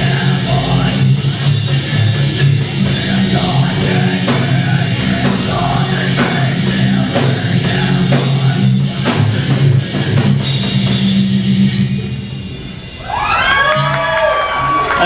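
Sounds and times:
live heavy metal band: 0.0s - 15.0s
crowd cheering and yelling: 12.9s - 15.0s.

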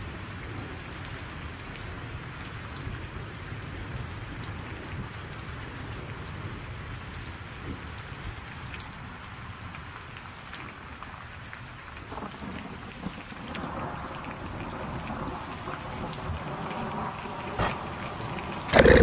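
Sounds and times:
steady rain: 0.0s - 19.0s.

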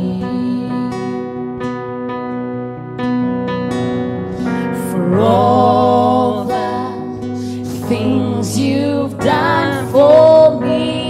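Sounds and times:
woman and man singing: 0.0s - 1.2s, 4.7s - 11.0s
acoustic guitar: 0.0s - 11.0s
keyboard: 0.0s - 11.0s.

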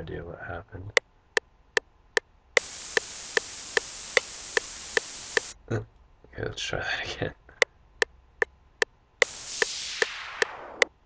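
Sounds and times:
hissing white noise: 2.6s - 5.6s, 9.2s - 11.0s
metronome ticking: 2.6s - 5.6s.

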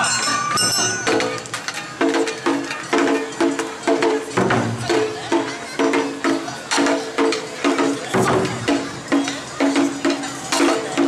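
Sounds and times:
percussion band playing festival music: 0.0s - 11.0s.

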